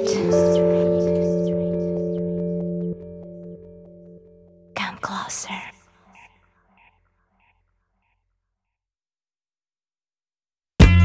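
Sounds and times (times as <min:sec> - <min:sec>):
breathy whispered vocal: 0:00.0 - 0:03.5, 0:04.7 - 0:07.6
held musical chord: 0:00.0 - 0:04.9.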